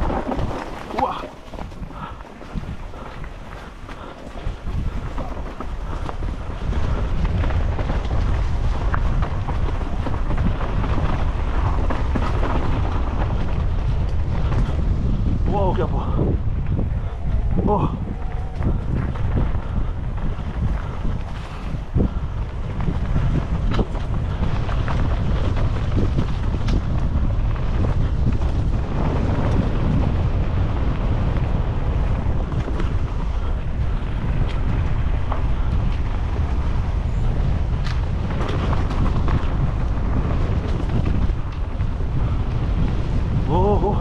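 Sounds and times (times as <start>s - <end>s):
bike rattling over bumps: 0.0s - 44.0s
wind rumbling on microphone: 0.0s - 44.0s.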